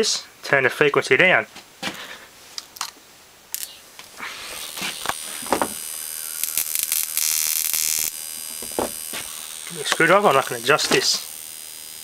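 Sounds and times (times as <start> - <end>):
high-pitched transformer whine: 3.5 - 12.0
harsh hiss: 3.6 - 11.3.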